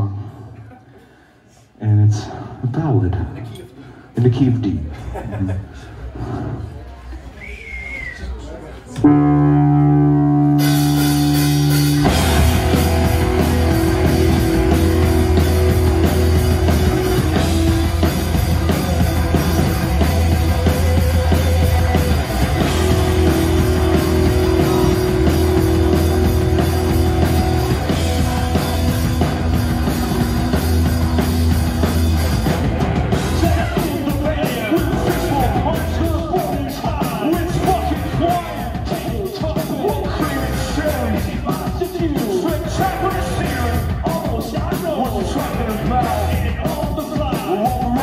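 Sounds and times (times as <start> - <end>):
held guitar chord ringing: 9.0 - 13.9
electric bass: 9.0 - 38.8, 40.0 - 41.4, 42.6 - 44.3, 45.1 - 46.7
electric guitars: 9.0 - 48.0
rock band playing loud: 9.0 - 48.0
drum kit steady beat: 9.1 - 48.0.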